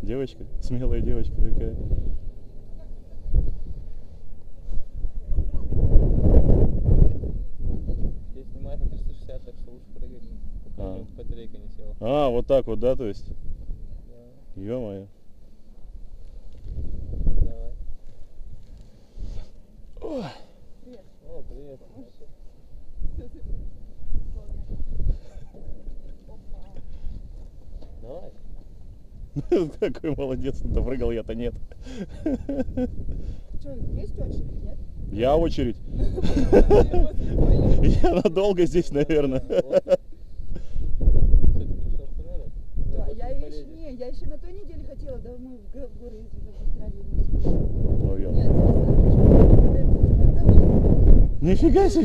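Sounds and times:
wind buffeting microphone: 0.0s - 14.9s, 15.7s - 20.4s, 21.2s - 52.0s.

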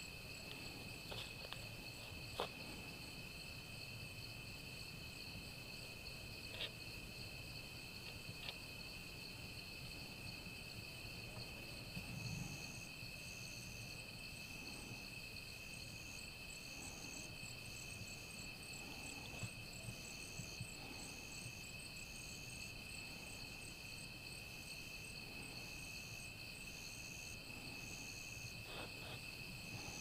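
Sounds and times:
crickets trilling: 0.0s - 30.0s.

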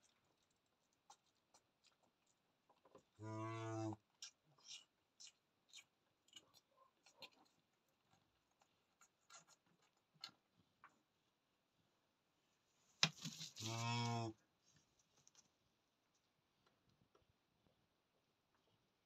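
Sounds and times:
cow mooing: 3.2s - 4.0s
faint clicks and rustles: 13.0s - 17.3s.

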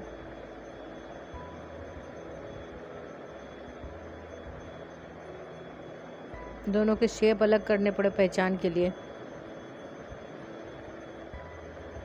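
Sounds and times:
low background hiss and hum: 0.0s - 12.0s.

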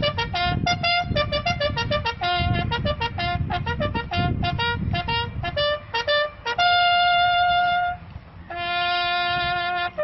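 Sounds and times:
brass instrument playing military call: 0.0s - 10.0s.

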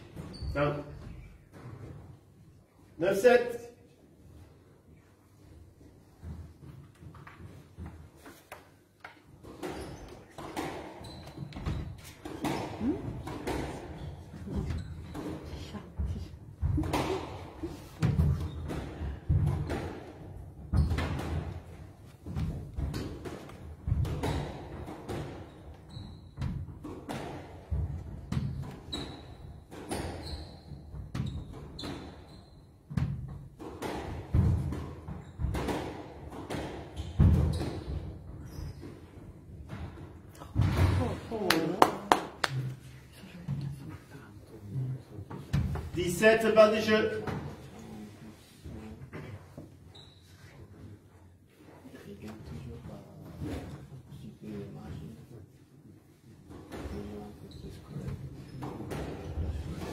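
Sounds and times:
shoes squeaking on court floor: 0.0s - 1.9s, 7.5s - 15.6s, 20.7s - 21.3s, 25.1s - 26.8s, 28.3s - 33.3s, 35.0s - 35.6s, 36.9s - 39.3s, 49.8s - 50.7s
squash ball hitting rackets and walls: 6.1s - 42.7s, 45.3s - 47.7s, 56.3s - 59.9s.

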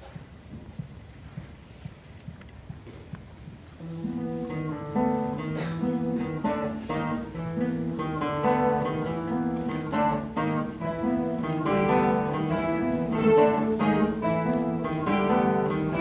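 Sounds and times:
classical guitar ensemble playing: 3.8s - 16.0s.

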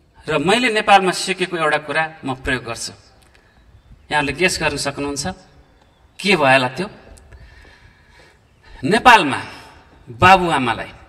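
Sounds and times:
man speaking into microphone: 0.2s - 3.2s, 4.1s - 5.6s, 6.2s - 7.2s, 8.7s - 11.0s.

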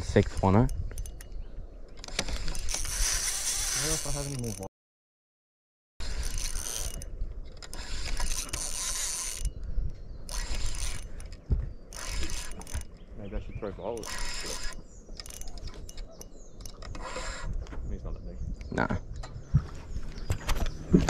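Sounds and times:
fishing reel whirring and ratcheting: 0.0s - 4.7s, 6.0s - 9.6s, 10.3s - 13.0s, 13.9s - 17.6s.

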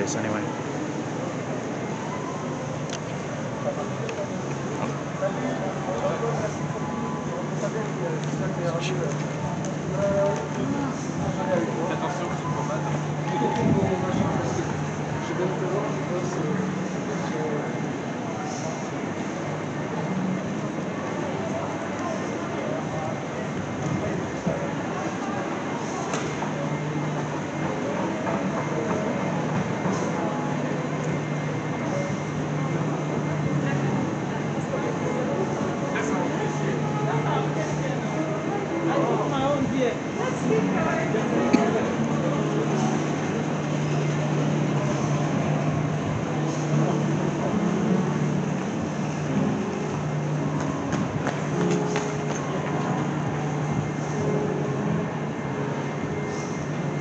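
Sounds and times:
crowd bustle: 0.0s - 57.0s
faint background voices: 0.0s - 57.0s.

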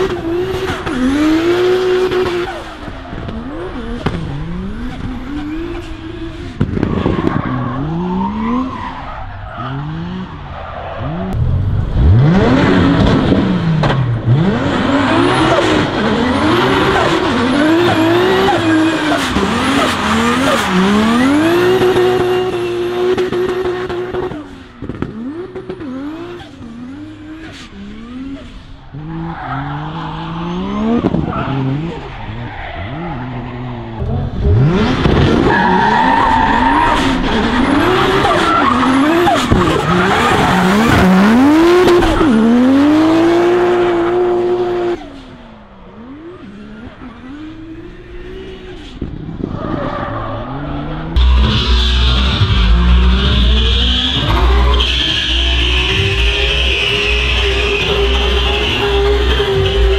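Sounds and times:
car engine revving: 0.0s - 59.9s
tyres squealing and skidding: 0.2s - 11.4s, 14.4s - 45.2s, 48.4s - 59.9s.

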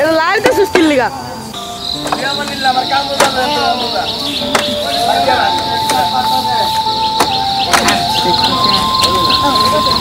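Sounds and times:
high-pitched insect trill: 0.0s - 10.0s.

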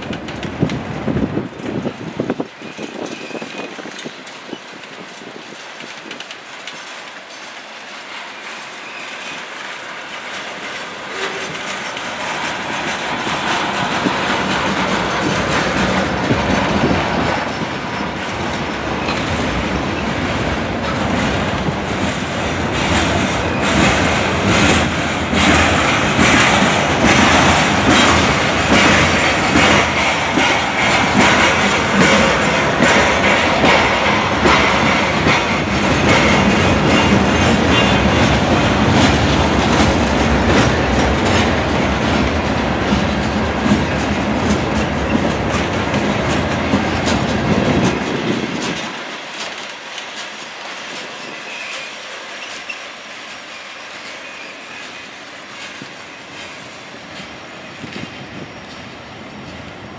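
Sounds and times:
clickety-clack over rail joints: 0.0s - 59.9s
train wheels rumbling: 0.0s - 59.9s.

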